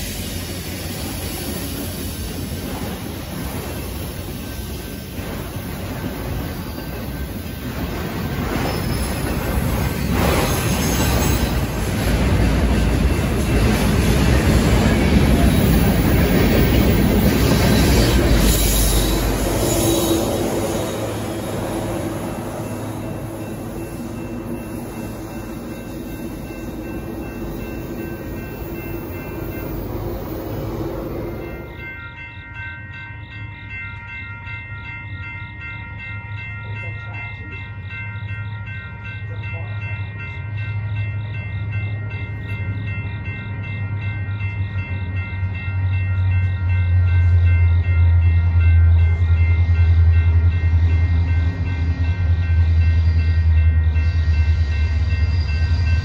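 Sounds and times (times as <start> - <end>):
crossing bell ringing: 0.0 - 56.0
freight train rumbling past: 0.0 - 56.0.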